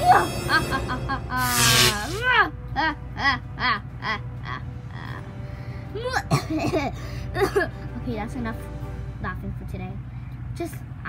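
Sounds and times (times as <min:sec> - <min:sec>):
girl laughing: 0:00.0 - 0:01.9, 0:06.3 - 0:07.8
background music: 0:00.0 - 0:11.0.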